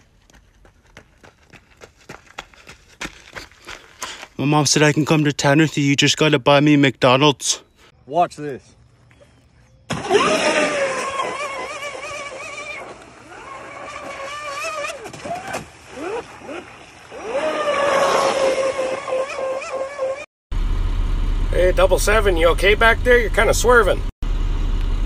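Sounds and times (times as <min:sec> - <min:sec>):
model boat motor whining: 0:10.0 - 0:15.3.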